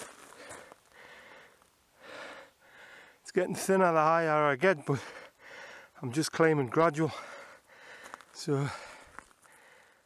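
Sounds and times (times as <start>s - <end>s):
faint breathing: 0.2s - 3.3s, 4.9s - 6.0s, 7.1s - 10.0s.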